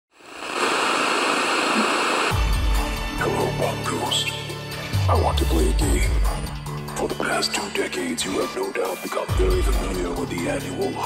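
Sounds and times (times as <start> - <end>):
television static hiss: 0.1 - 2.3.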